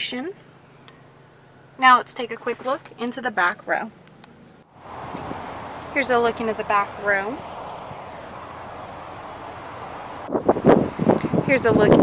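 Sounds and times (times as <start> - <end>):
wind buffeting microphone: 4.8 - 12.0.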